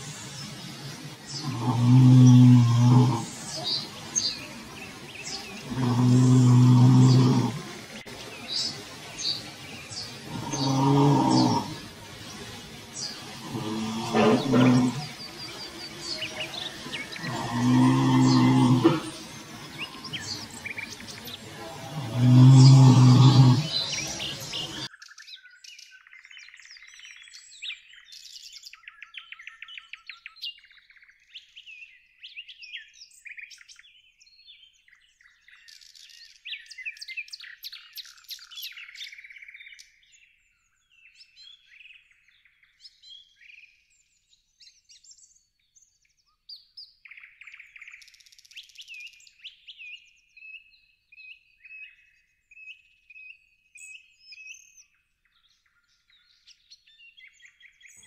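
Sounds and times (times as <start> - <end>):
songbirds singing and chirping: 0.0 - 58.0.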